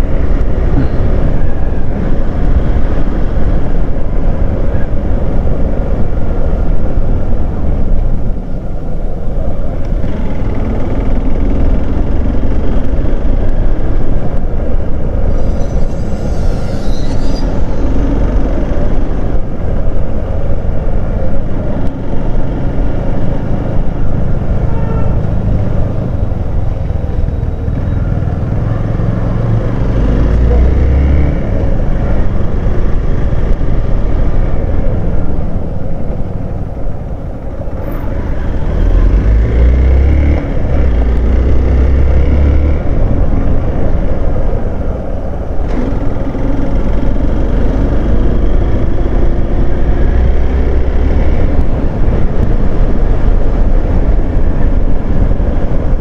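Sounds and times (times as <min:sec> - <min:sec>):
wind rumble on microphone: 0:00.0 - 0:56.0.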